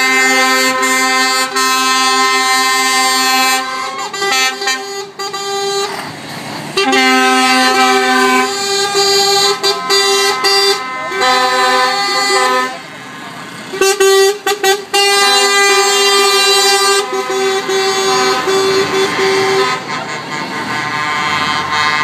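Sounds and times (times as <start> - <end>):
lorry air horn blasts: 0.0 - 6.0, 6.8 - 12.8, 13.7 - 22.0.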